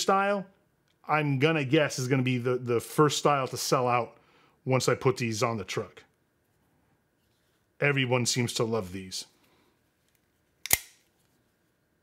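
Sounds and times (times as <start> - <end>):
knife blade snapping into handle: 10.6 - 11.0.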